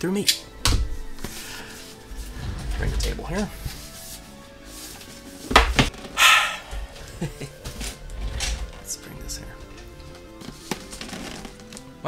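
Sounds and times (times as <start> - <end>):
person sighing: 6.2 - 7.4.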